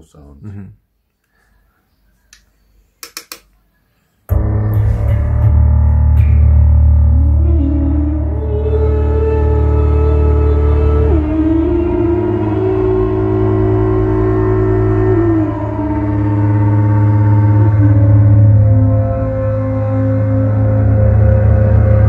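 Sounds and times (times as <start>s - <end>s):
higher sliding synth tone: 4.3s - 22.0s
low synthesizer drone: 4.3s - 22.0s.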